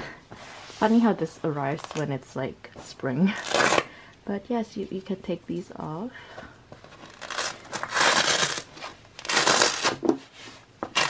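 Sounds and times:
hook-and-loop fastener ripping: 0:07.0 - 0:10.0.

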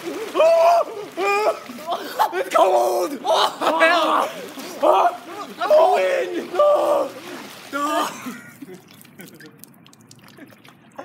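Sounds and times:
young men yelling and cheering: 0:00.0 - 0:08.5.

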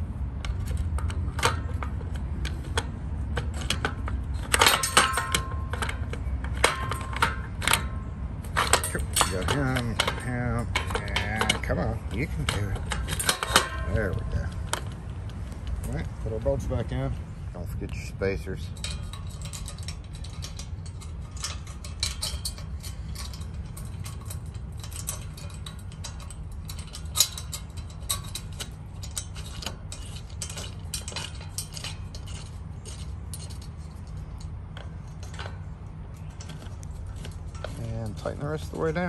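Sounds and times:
steady low rumble: 0:00.0 - 0:39.0
small metal clicks and ticks: 0:00.3 - 0:39.0.

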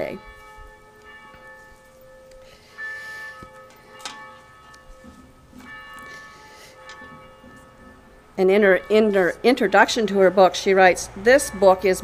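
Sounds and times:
bell-like instrumental music: 0:00.0 - 0:09.3.

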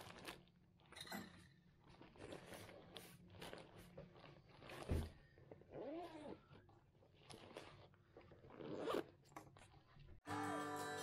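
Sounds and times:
backpack zipper: 0:05.7 - 0:06.4, 0:08.5 - 0:09.2.

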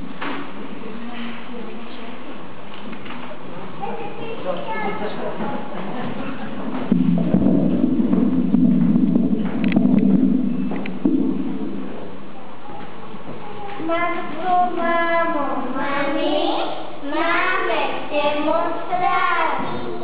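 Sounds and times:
chatter of children and adults: 0:00.5 - 0:07.0, 0:12.2 - 0:17.6.

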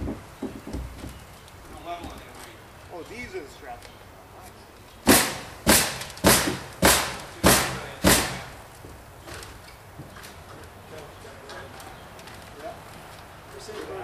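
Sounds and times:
hammer blows on wood: 0:05.0 - 0:08.6.

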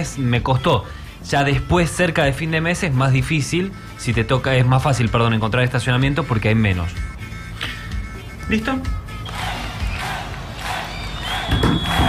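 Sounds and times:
crowd cheer sound effect: 0:09.2 - 0:12.0.

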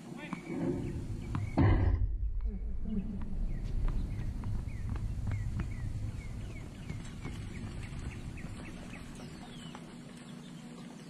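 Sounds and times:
low rumble: 0:00.5 - 0:09.8.

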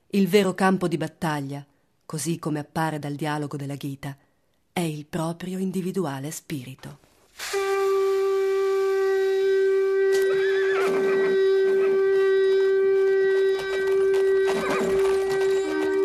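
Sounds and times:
long horn blast: 0:07.5 - 0:16.0
horse whinnying: 0:10.2 - 0:16.0.

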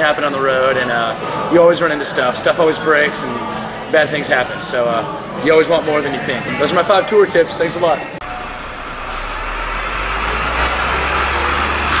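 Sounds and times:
heavy road vehicle rumbling: 0:08.2 - 0:12.0.

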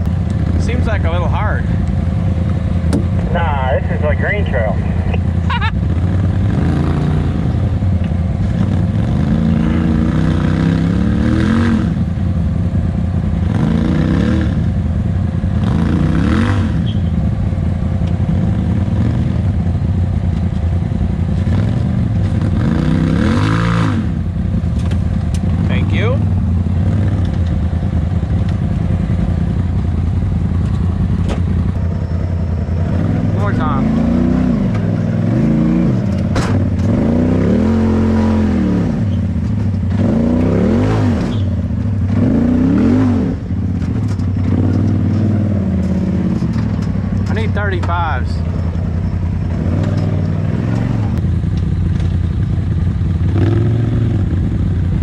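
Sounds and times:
off-road vehicle engines revving: 0:00.0 - 0:55.0.

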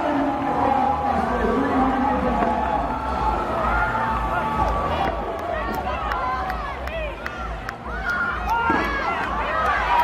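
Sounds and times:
spectators shouting encouragement: 0:00.3 - 0:10.0.

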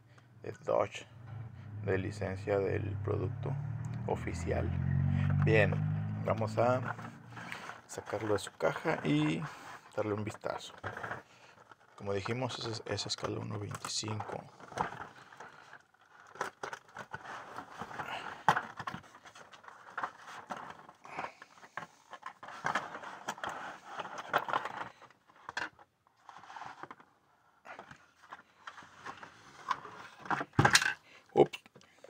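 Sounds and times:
cardboard and plastic packaging handled: 0:06.2 - 0:31.1.

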